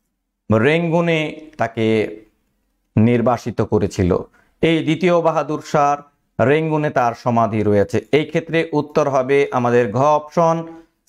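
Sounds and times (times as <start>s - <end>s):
man talking: 0.5s - 10.9s.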